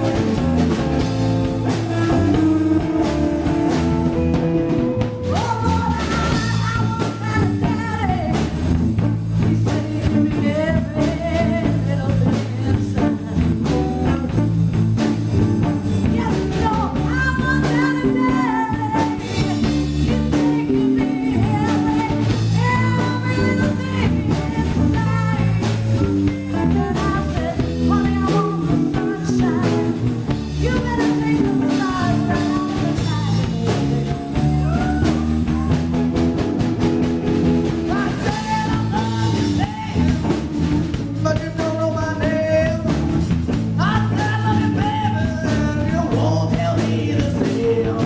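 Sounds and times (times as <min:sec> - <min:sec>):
woman singing lead: 0:00.0 - 0:36.2, 0:37.6 - 0:48.0
drum kit: 0:00.0 - 0:48.0
electric bass: 0:00.0 - 0:48.0
electric guitar: 0:00.0 - 0:48.0.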